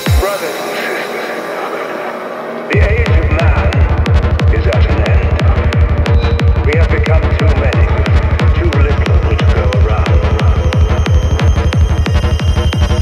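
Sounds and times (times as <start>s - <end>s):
pounding kick drum and bassline: 0.0s - 1.5s, 2.7s - 13.0s
synth textures: 0.0s - 13.0s.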